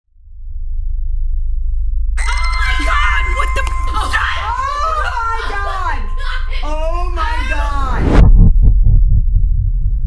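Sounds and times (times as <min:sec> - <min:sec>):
deep bass drone: 0:00.0 - 0:10.0.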